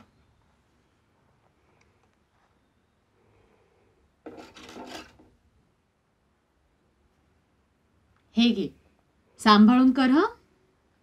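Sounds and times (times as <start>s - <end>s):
needle and thread rasping: 4.2s - 5.3s.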